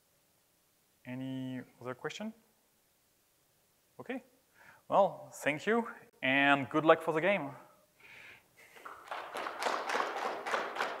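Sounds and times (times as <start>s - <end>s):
audience applauding: 8.8s - 11.0s.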